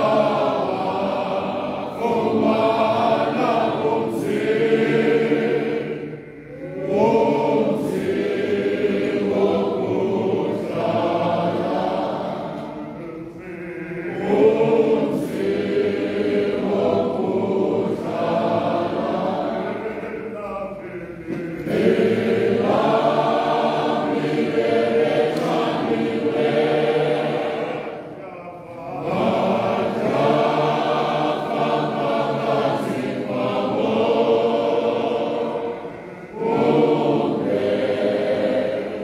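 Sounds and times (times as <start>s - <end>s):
choir singing: 0.0s - 39.0s.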